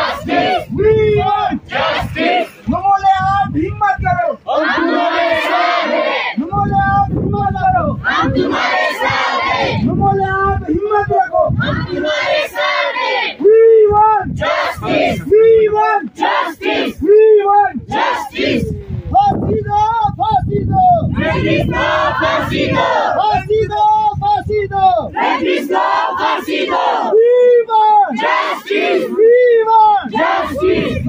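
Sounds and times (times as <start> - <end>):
crowd shouting in unison: 0.0 - 2.7, 4.4 - 6.4, 8.0 - 9.9, 11.6 - 13.6, 14.2 - 18.8, 21.1 - 23.4, 25.1 - 27.2, 27.8 - 31.0
man shouting a chant: 0.7 - 1.6, 2.5 - 5.1, 6.4 - 8.0, 9.8 - 12.2, 13.4 - 16.2, 17.0 - 17.9, 18.6 - 21.1, 23.1 - 25.2, 27.0 - 28.3, 28.9 - 31.0.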